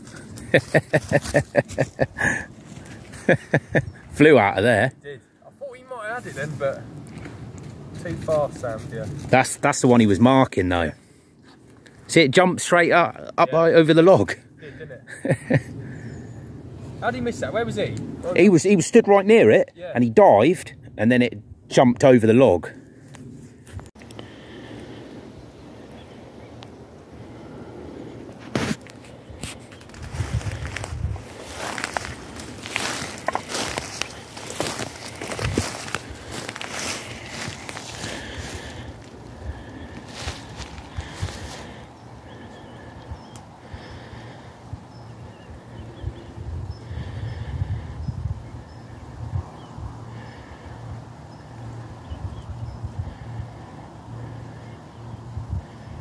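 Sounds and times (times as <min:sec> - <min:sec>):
stems crackling and snapping: 0:00.0 - 0:03.2, 0:07.0 - 0:09.8, 0:28.3 - 0:44.3
footsteps through dry undergrowth: 0:00.0 - 0:03.6, 0:28.4 - 0:42.4
wind rumble on microphone: 0:26.5 - 0:56.0.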